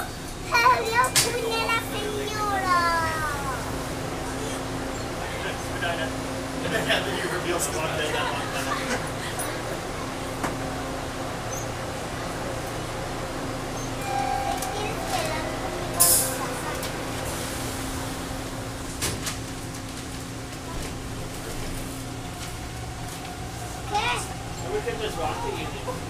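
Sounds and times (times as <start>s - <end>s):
passengers chattering: 0.0s - 26.0s
subway car equipment hum: 0.0s - 26.0s.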